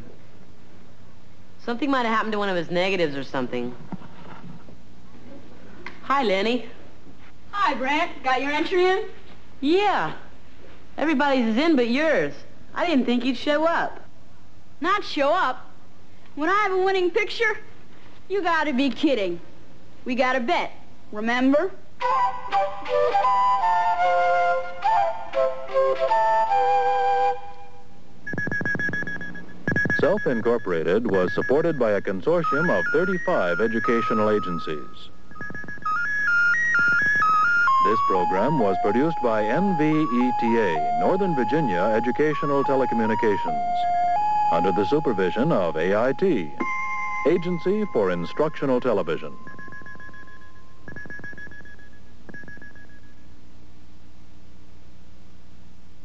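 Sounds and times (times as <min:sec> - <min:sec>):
steady low hum: 0:26.9 - 0:56.0
electronic theme music: 0:35.9 - 0:49.4.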